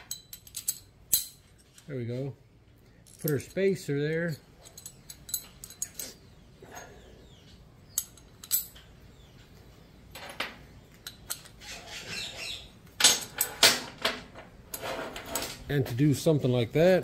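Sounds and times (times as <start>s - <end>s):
metal parts clinking on workbench: 0.0s - 1.9s, 3.0s - 6.2s, 8.0s - 8.9s.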